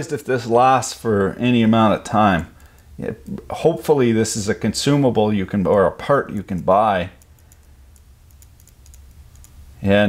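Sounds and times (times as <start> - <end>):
man talking: 0.0 - 7.2, 9.8 - 10.0.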